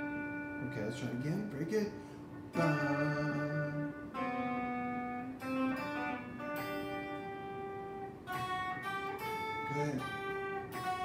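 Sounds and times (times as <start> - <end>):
electric guitar slow melody: 0.0 - 11.0.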